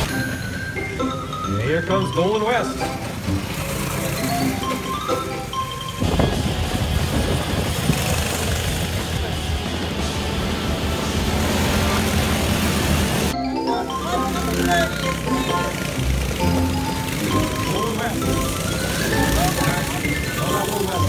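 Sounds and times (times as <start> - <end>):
mallet percussion music: 0.0 - 8.4, 13.2 - 21.0
go-kart engines racing past: 0.0 - 21.0.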